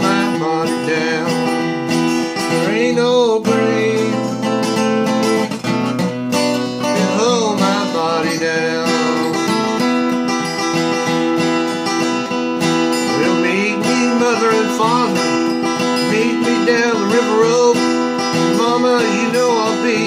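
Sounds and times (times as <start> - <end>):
man singing: 0.0 - 5.5, 6.6 - 10.2, 12.8 - 20.0
acoustic guitar strumming: 0.0 - 20.0.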